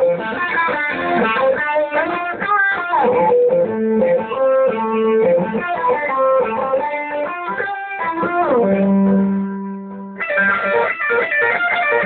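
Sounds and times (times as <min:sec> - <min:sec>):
electric guitar tapping run: 0:00.0 - 0:12.0.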